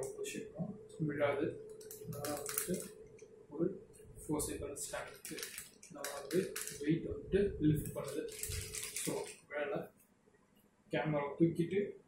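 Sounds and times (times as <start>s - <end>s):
camera tripod clicks and rattles: 5.1s - 6.8s, 7.9s - 9.4s.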